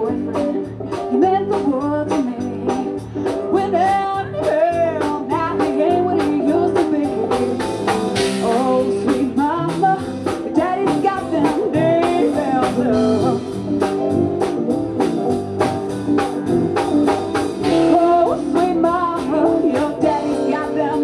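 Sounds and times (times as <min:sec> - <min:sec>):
woman singing: 0:00.0 - 0:13.7, 0:17.6 - 0:21.0
live rock band playing: 0:00.0 - 0:21.0.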